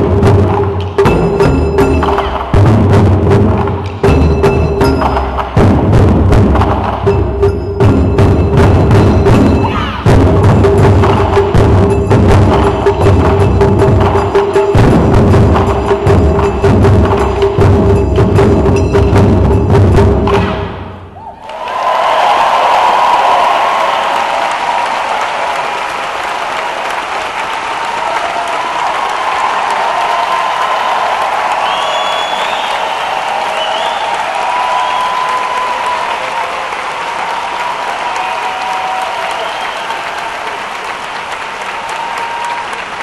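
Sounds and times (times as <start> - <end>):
cheers and whoops: 21.2 - 26.0, 27.7 - 40.9, 41.6 - 43.0
audience applauding: 21.3 - 43.0.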